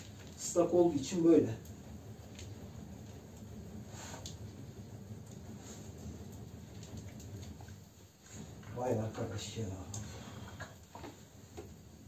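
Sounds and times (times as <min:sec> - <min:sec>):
paper fanning swishes: 0:00.0 - 0:10.3
fire ticking and crackling: 0:00.0 - 0:12.0.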